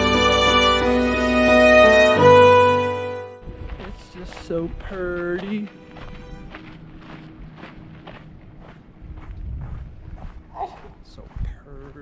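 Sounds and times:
background music: 0:00.0 - 0:09.0
footsteps on dirt trail: 0:03.4 - 0:12.0.

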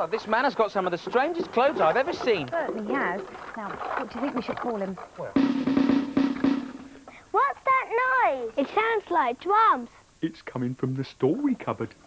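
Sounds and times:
drum roll: 0:05.3 - 0:07.1.

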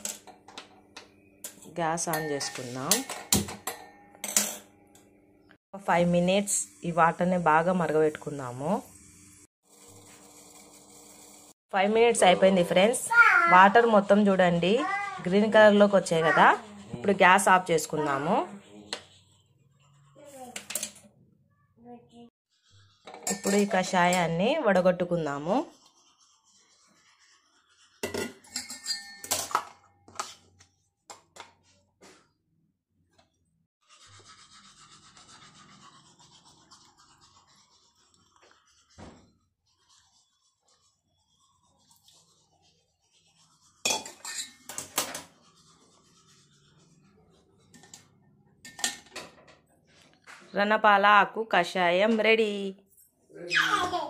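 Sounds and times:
metal vessels clinking: 0:01.4 - 0:04.7, 0:23.0 - 0:24.3, 0:28.0 - 0:30.3, 0:43.9 - 0:45.0
woman speaking: 0:01.7 - 0:03.0, 0:05.8 - 0:08.8, 0:11.8 - 0:18.6, 0:23.4 - 0:25.7, 0:50.6 - 0:52.8.

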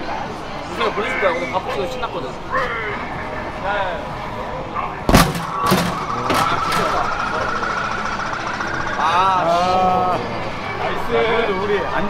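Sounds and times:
voices shouting: 0:04.7 - 0:10.4
punch hitting punching bag: 0:05.1 - 0:06.0.

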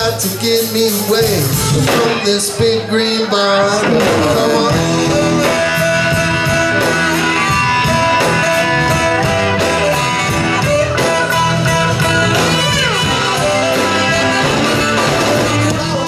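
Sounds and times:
blues-rock band playing: 0:00.0 - 0:16.0
electric guitar: 0:00.0 - 0:16.0.

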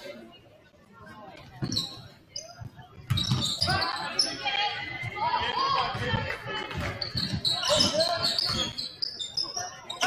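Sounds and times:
sneaker squeaks: 0:01.5 - 0:04.5, 0:06.8 - 0:10.0.

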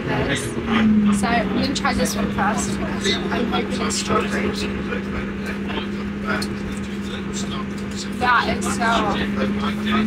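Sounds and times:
constant low hum: 0:00.0 - 0:10.0
train carriage running noise: 0:00.0 - 0:10.0.

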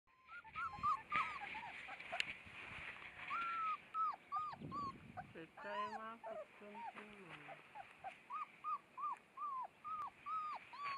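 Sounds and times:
puppies whimpering and yipping: 0:00.1 - 0:02.3, 0:03.2 - 0:10.9.

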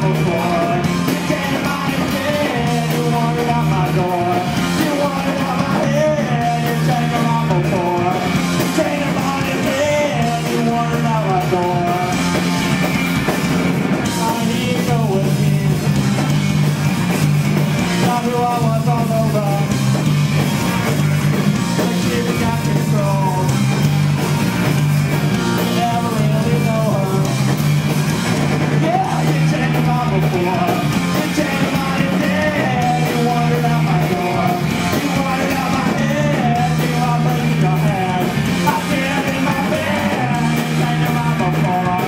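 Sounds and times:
person singing: 0:00.0 - 0:12.3, 0:14.0 - 0:16.0, 0:18.0 - 0:19.8, 0:21.7 - 0:23.6, 0:25.4 - 0:27.4, 0:28.8 - 0:42.0
bass guitar: 0:00.0 - 0:42.0
drum kit: 0:00.0 - 0:42.0
electric guitar: 0:00.0 - 0:42.0.

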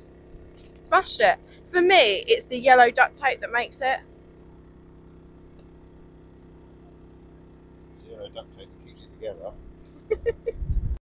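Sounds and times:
quiet low hum: 0:00.0 - 0:11.0.

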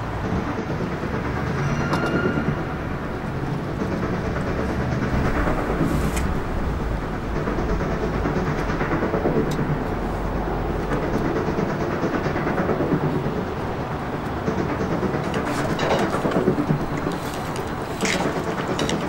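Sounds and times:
machinery rumbling and rattling: 0:00.0 - 0:19.0.

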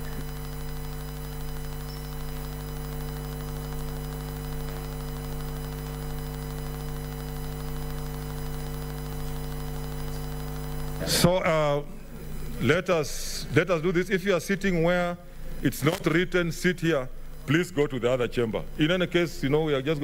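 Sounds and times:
electrical mains hum: 0:00.0 - 0:20.0.

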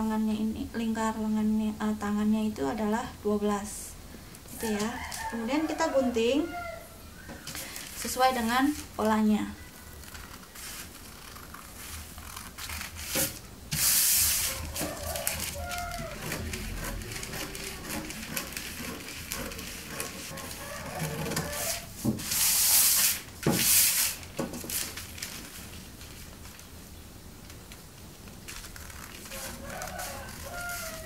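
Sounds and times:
paper rustling and crinkling: 0:07.4 - 0:31.0
scissors snipping paper: 0:10.0 - 0:21.9, 0:28.4 - 0:31.0.

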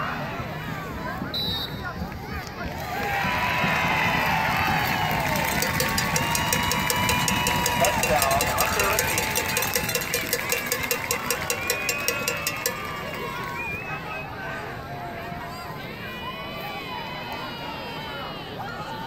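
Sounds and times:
crowd cheering and yelling: 0:00.0 - 0:19.0
cowbell ringing: 0:05.5 - 0:13.2.

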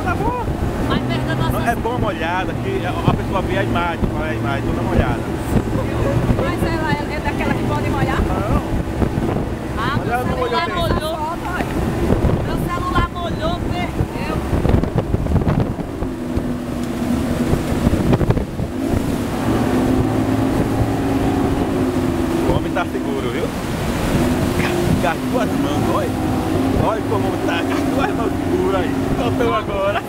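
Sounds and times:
motorboat engine running: 0:00.0 - 0:30.0
water rushing past hull: 0:00.0 - 0:30.0
wind noise on microphone: 0:00.0 - 0:30.0.

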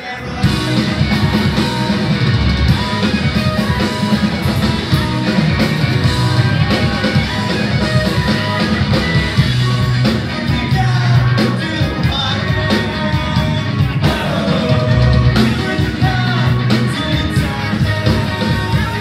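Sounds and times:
punk rock band playing live: 0:00.0 - 0:19.0.

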